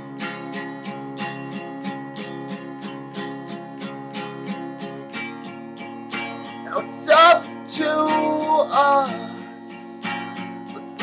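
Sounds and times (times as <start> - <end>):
acoustic guitar strumming: 0.0 - 11.0
person singing folk song: 6.1 - 11.0.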